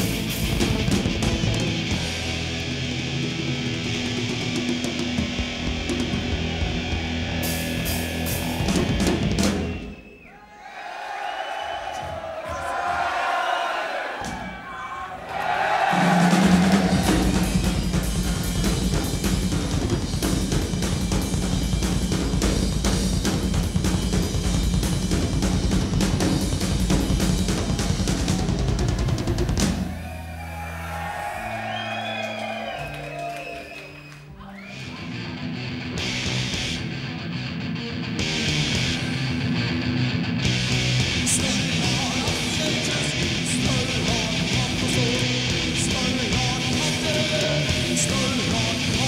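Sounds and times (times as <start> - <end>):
heavy metal band playing: 0.0 - 9.8, 15.6 - 33.1, 35.0 - 49.0
distorted guitars: 0.0 - 10.0, 16.3 - 30.8, 34.7 - 49.0
pounding drums: 15.4 - 30.1.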